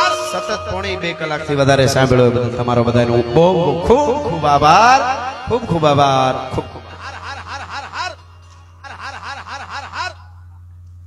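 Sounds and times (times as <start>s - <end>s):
steady low hum: 0.0s - 11.0s
person laughing: 6.5s - 8.2s, 8.8s - 10.3s.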